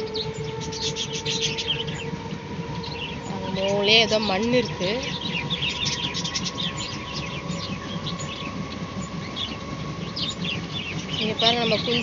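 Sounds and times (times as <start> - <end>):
small birds chirping: 0.0 - 12.0.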